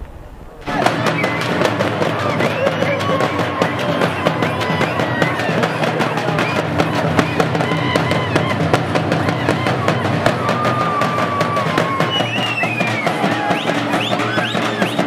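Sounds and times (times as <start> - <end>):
crowd voices: 0.0 - 15.0
large drums beaten fast: 0.2 - 15.0.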